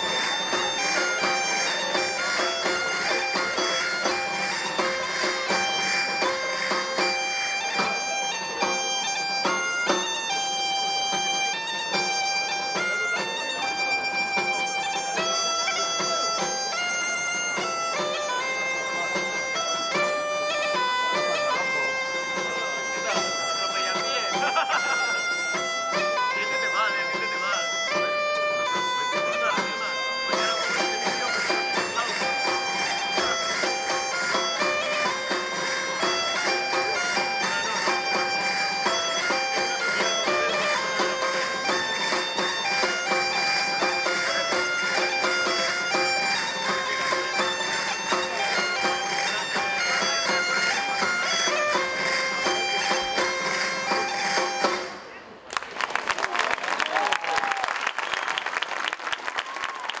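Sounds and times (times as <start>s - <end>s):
bagpipe dance tune with drone: 0.0s - 55.0s
applause: 55.5s - 60.0s.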